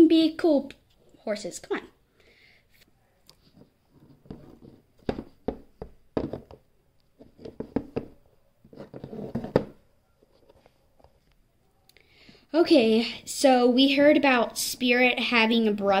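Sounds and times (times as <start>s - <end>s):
plastic figurines tapping: 5.0s - 8.2s.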